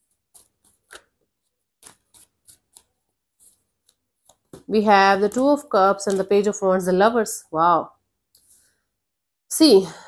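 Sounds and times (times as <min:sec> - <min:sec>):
cards being shuffled: 0:00.0 - 0:04.7.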